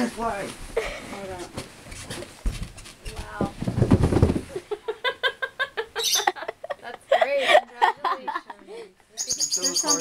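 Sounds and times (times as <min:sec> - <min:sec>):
body bumping down carpeted stairs: 0:02.4 - 0:04.4
people laughing: 0:04.5 - 0:08.9.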